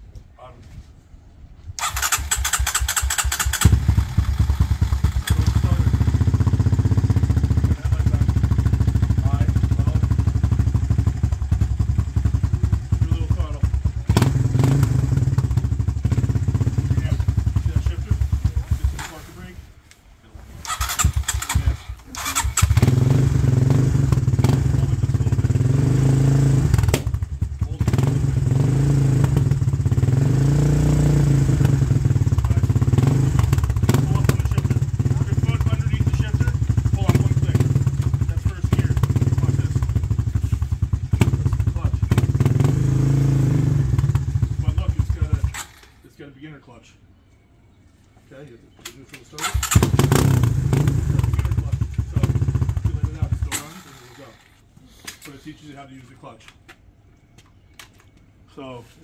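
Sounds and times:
electric starter cranking: 1.8 - 4.2, 20.6 - 24.5, 45.4 - 46.0, 49.4 - 51.3, 52.7 - 55.3
quad engine running: 1.8 - 19.2, 20.6 - 46.0, 49.4 - 54.6.

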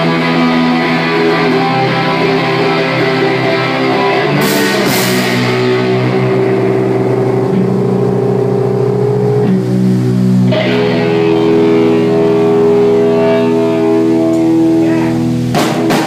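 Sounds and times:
electric guitars ringing chords: 0.0 - 16.0.

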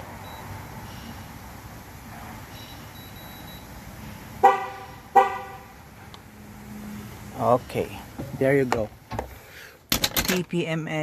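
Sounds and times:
car horn chirping: 4.4 - 5.8.

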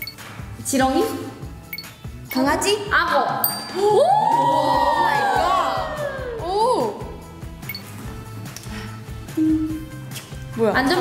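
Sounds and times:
young women screaming: 3.8 - 6.8.

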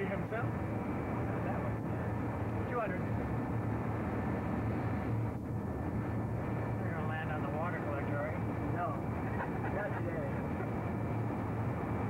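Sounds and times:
aircraft engines and airflow: 0.0 - 12.0
low hum: 0.0 - 12.0.

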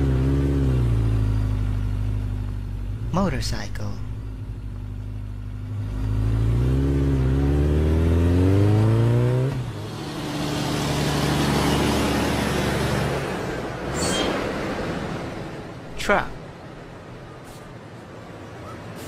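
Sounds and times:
motorcycle engine revving: 0.0 - 3.2, 4.2 - 13.6.

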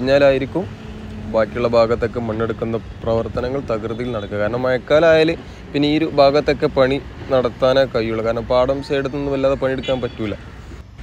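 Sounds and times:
man speaking: 1.3 - 10.5.

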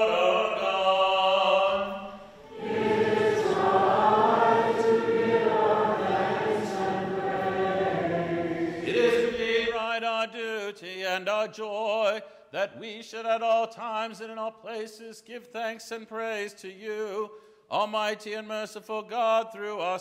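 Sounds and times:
organ: 0.0 - 9.8
congregation singing: 0.0 - 10.6.

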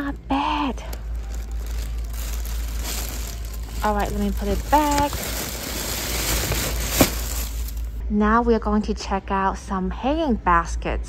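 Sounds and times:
plastic sleeves crinkling: 0.0 - 8.0
sharp plastic crackle: 0.0 - 8.0.

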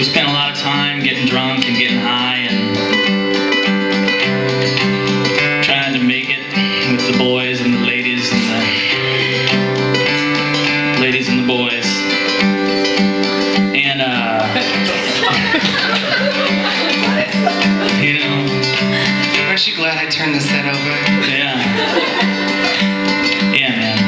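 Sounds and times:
acoustic guitar chords: 0.0 - 24.0.

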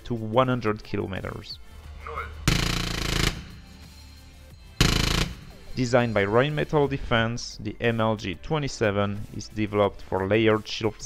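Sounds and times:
cannon firing rapid bursts: 2.5 - 3.8, 4.8 - 5.7.

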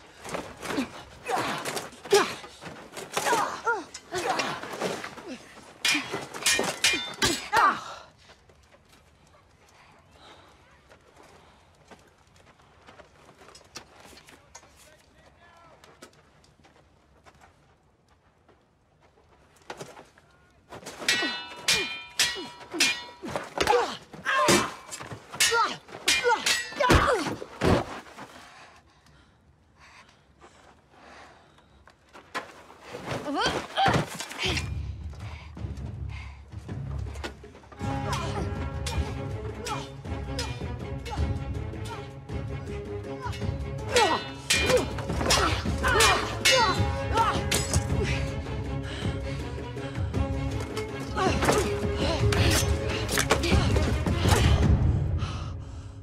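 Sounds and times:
steel swords clashing: 0.8 - 7.9, 20.8 - 27.8, 33.4 - 34.8, 38.0 - 42.1, 43.2 - 48.3, 50.6 - 54.6
person breathing heavily: 55.0 - 56.0.

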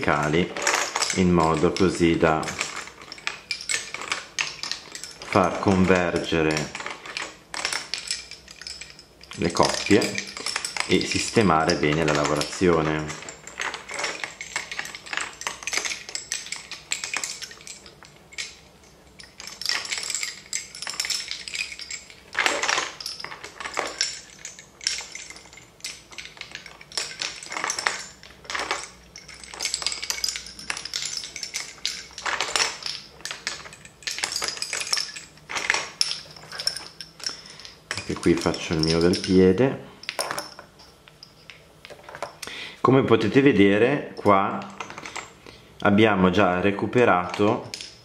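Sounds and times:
wooden bobbins clacking: 0.0 - 42.6, 44.2 - 45.6, 47.2 - 48.0.

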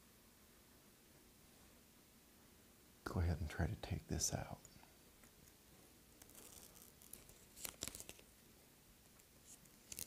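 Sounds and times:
masking film peeling off paper: 6.1 - 8.3, 9.4 - 10.0.

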